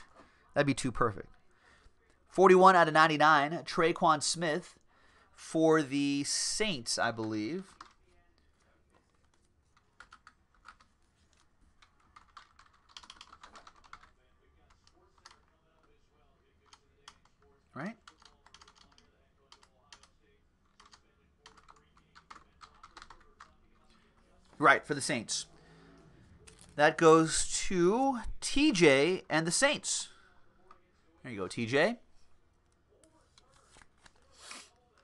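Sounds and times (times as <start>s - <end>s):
keyboard typing: 7.1s - 8.0s, 9.2s - 15.5s, 18.0s - 20.1s, 20.7s - 23.6s.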